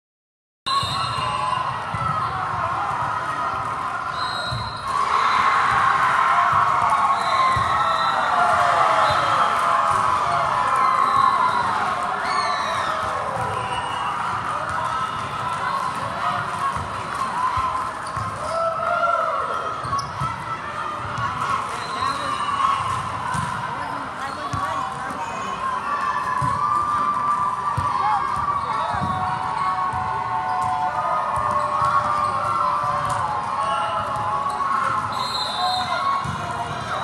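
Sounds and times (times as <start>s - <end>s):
crowd chatter and calls: 0.7s - 37.0s
shoes squeaking on court floor: 18.0s - 18.4s, 19.8s - 20.3s, 23.8s - 24.9s.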